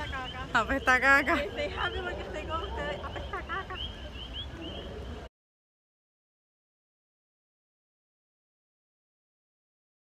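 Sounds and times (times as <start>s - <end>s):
frogs chirping: 0.0s - 5.3s.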